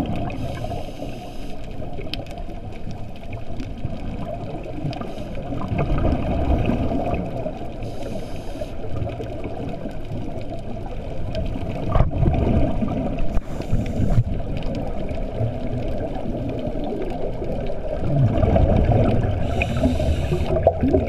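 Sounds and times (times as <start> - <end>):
muffled underwater rumble: 0.0 - 21.0.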